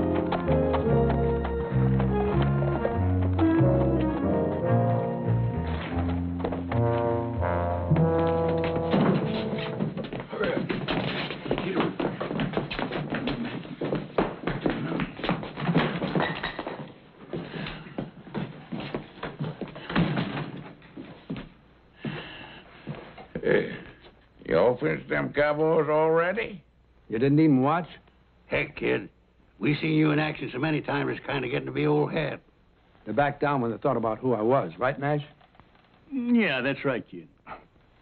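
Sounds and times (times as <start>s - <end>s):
orchestral music: 0.0s - 10.0s.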